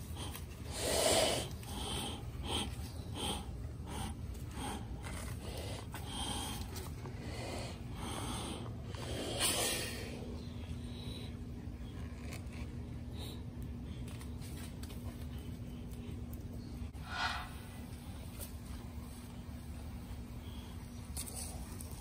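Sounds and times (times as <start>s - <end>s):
tortoise breathing: 0.0s - 14.2s, 16.8s - 17.9s.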